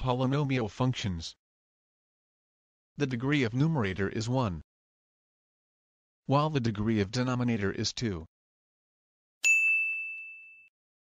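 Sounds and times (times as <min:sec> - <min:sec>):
bell-like ding: 0:09.4 - 0:10.8.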